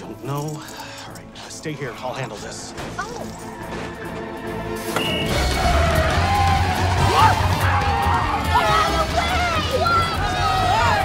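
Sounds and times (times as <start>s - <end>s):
lively orchestral film music: 0.0s - 11.0s.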